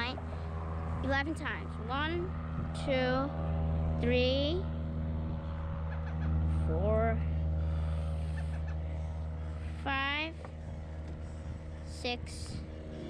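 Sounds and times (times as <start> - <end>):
child counting aloud: 0.0 - 0.2, 1.0 - 3.3, 4.0 - 4.7, 9.8 - 10.4, 11.9 - 12.6
steady low hum: 0.0 - 13.0.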